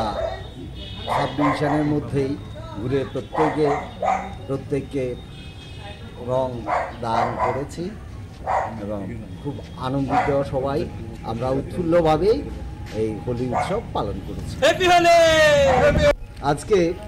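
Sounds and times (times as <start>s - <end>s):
man talking: 0.0s - 5.2s, 6.2s - 8.0s, 8.7s - 17.0s.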